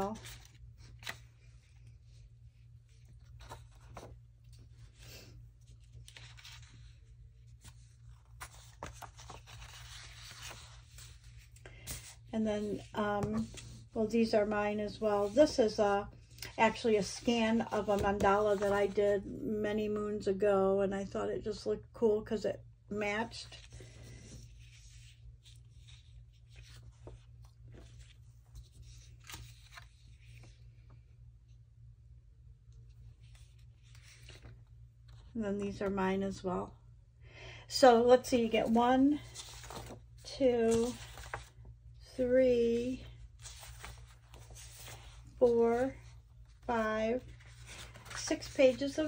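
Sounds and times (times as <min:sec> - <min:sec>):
paper sheets rustling: 0:00.0 - 0:19.0, 0:23.5 - 0:30.8, 0:33.2 - 0:35.3, 0:38.6 - 0:41.7, 0:42.6 - 0:49.0.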